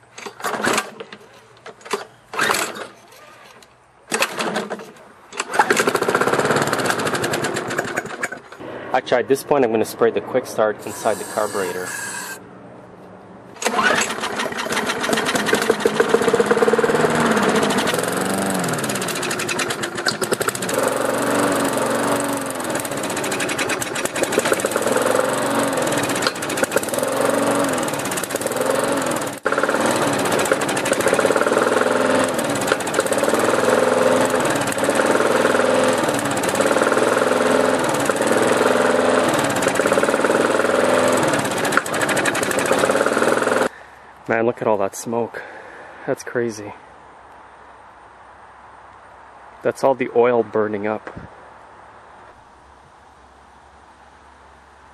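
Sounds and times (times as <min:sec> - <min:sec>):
lawn mower engine revving: 0:00.1 - 0:08.8, 0:10.8 - 0:12.4, 0:13.5 - 0:43.8.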